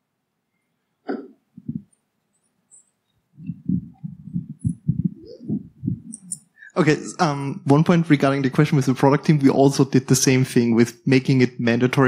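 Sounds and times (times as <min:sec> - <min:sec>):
microphone being handled: 0:01.1 - 0:01.9, 0:02.7 - 0:06.5.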